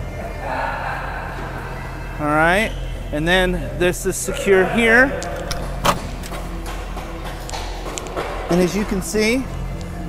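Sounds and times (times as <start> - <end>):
quiet background music: 0.0 - 10.0
steady low hum: 0.0 - 10.0.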